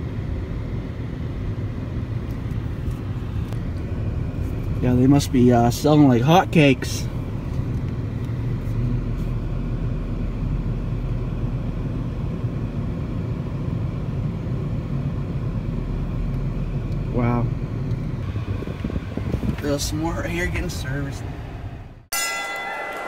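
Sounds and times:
car engine and road rumble: 0.0s - 22.4s.

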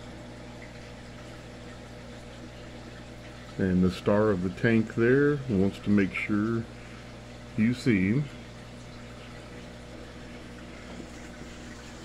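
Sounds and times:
aquarium pump hum: 0.0s - 12.0s.

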